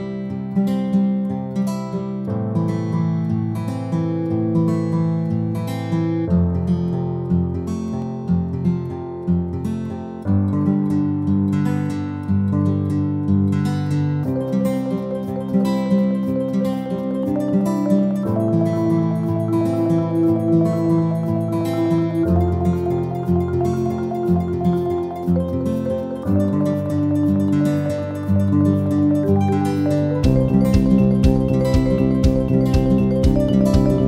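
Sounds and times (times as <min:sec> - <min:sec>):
acoustic guitar picking: 0:00.0 - 0:34.0.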